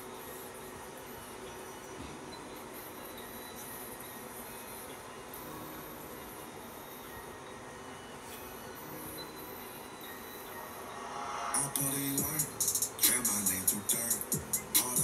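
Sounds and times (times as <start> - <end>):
faint steady tones: 0.0 - 15.0
steady even noise: 10.2 - 15.0.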